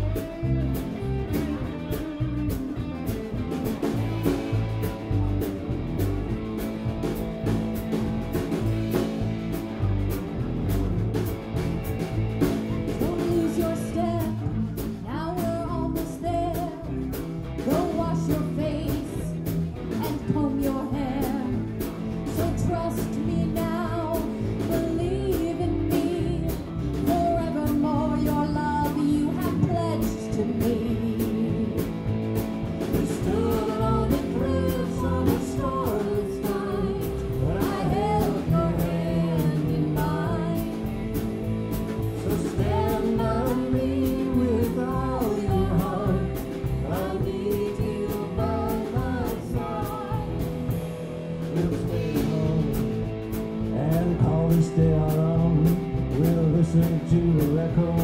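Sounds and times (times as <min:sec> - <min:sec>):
drum kit: 0:00.0 - 0:58.0
electric bass: 0:00.0 - 0:58.0
electric guitar: 0:00.0 - 0:58.0
woman singing: 0:12.9 - 0:32.1, 0:32.9 - 0:41.3, 0:42.0 - 0:50.9, 0:51.5 - 0:53.0.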